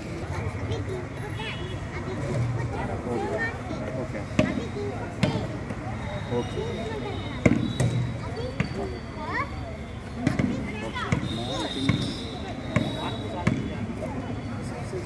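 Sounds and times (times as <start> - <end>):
voices chattering: 0.0 - 15.0.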